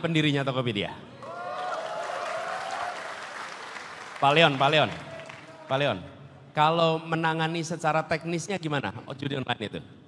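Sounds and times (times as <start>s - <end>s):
audience applauding: 1.3s - 5.7s.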